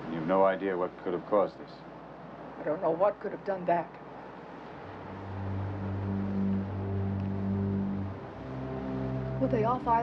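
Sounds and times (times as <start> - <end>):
film score music held notes: 4.6 - 10.0.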